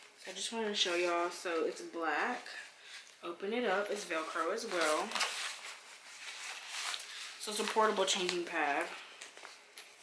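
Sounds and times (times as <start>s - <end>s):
fabric rustling: 0.0s - 10.0s.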